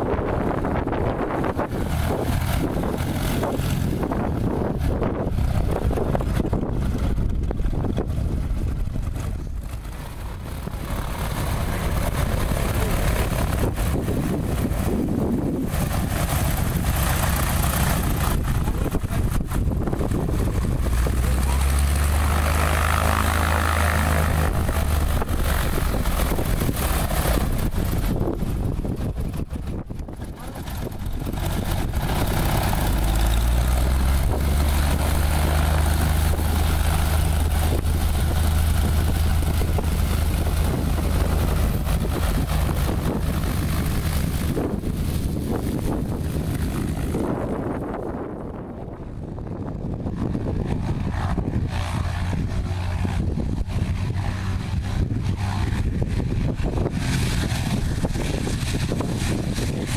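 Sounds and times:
propeller plane engine: 0.0s - 59.9s.

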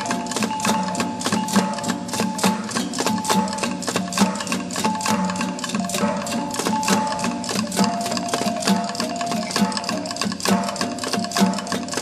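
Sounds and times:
fast percussion music: 0.0s - 12.0s.

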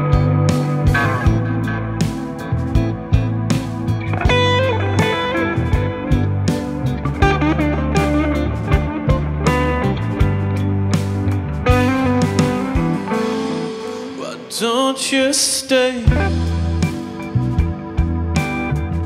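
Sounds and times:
bass guitar: 0.0s - 14.6s, 15.9s - 19.0s
electric guitar: 0.0s - 19.0s.

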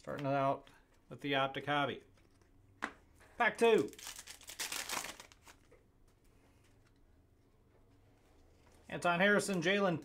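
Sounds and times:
foil card pack crinkling: 3.6s - 5.7s.

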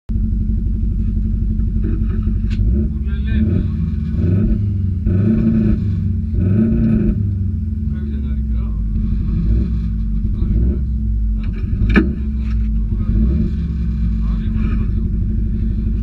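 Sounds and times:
car engine idling: 0.1s - 16.0s.

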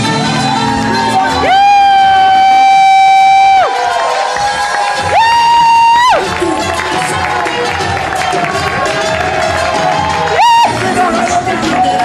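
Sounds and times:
crowd cheering: 0.0s - 12.0s
party music: 0.0s - 12.0s.

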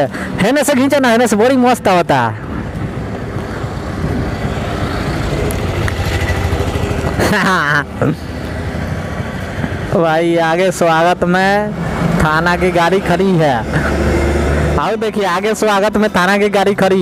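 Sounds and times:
man speaking: 0.0s - 2.5s, 9.9s - 13.8s, 14.7s - 17.0s
motorcycle engine running: 3.2s - 9.9s.

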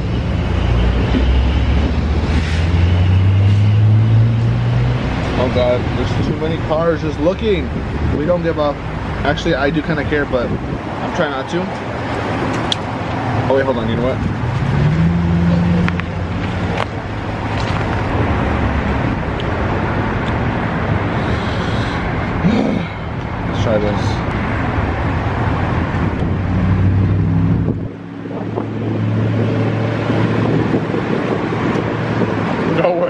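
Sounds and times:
traffic noise: 0.0s - 33.0s
car engines idling: 15.5s - 26.4s.

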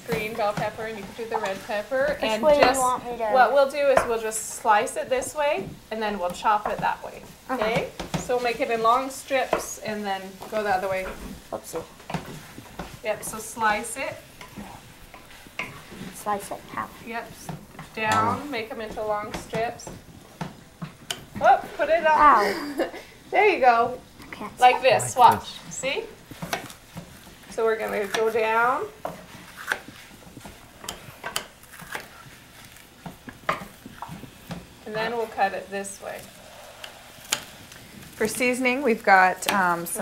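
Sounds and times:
meat sizzling in a frying pan: 3.4s - 22.3s, 25.5s - 40.0s.

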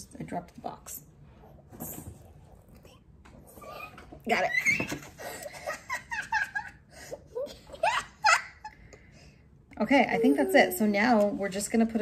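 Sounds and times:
boy giggling: 5.0s - 8.8s.

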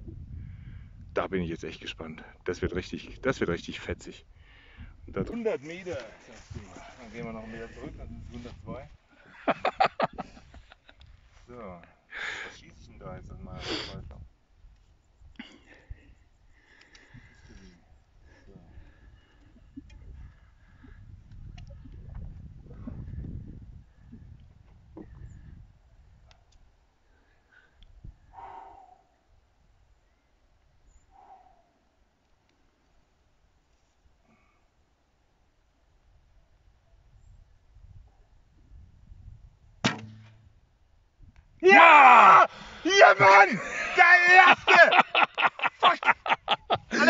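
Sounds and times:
wind buffeting microphone: 0.0s - 1.2s, 6.5s - 9.0s, 18.4s - 26.3s, 37.2s - 39.8s
bowstring crack: 39.8s - 40.5s.

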